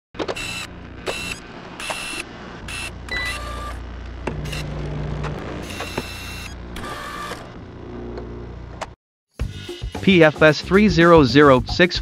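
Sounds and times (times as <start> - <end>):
mechanical whirring bursts: 0.2 - 8.8
low hum: 0.4 - 9.0.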